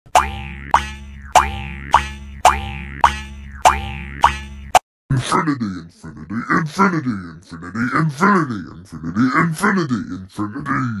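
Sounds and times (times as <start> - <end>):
cartoon boing spring effect: 0.1 - 4.8.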